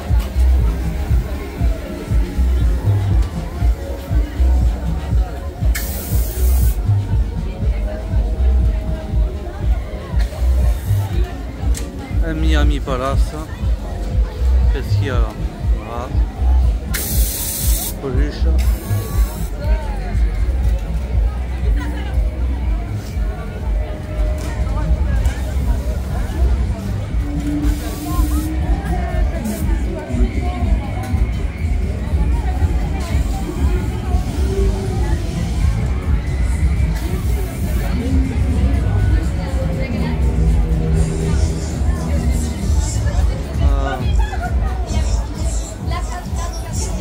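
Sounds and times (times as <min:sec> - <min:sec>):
crowd chatter: 0:00.0 - 0:47.0
fairground music with heavy bass: 0:00.0 - 0:47.0
loud hissing burst: 0:05.7 - 0:06.8, 0:17.0 - 0:18.0.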